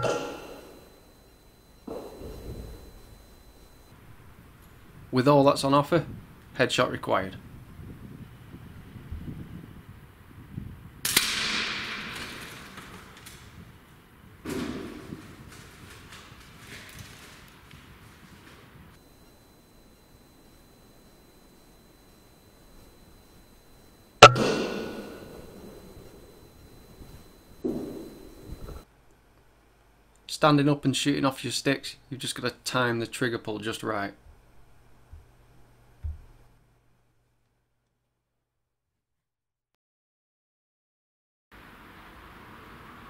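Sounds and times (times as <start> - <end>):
air rifle shot: 11.1 - 12.1, 24.2 - 25.5
bursts of noise: 24.2 - 28.8.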